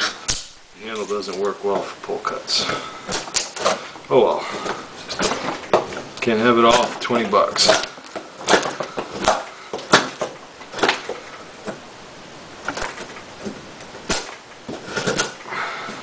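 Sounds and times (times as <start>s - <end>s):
knife carving wood: 2.6s - 3.9s.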